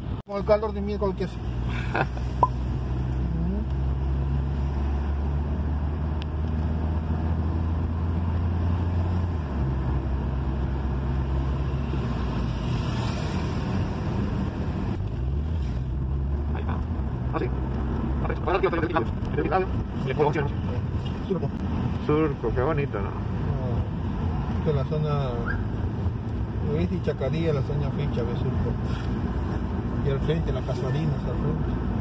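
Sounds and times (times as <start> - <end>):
car engine and road noise: 0.0 - 32.0.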